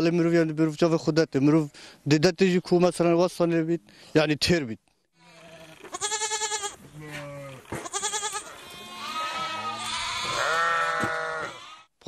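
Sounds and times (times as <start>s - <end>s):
goats and sheep bleating: 5.2s - 11.9s.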